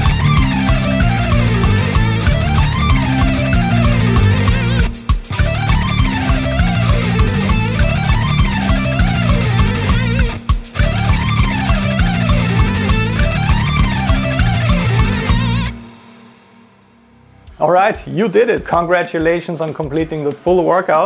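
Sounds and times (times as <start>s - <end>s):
fast electric guitar runs: 0.0s - 15.7s
metal backing track with drums: 0.0s - 16.7s, 17.3s - 21.0s.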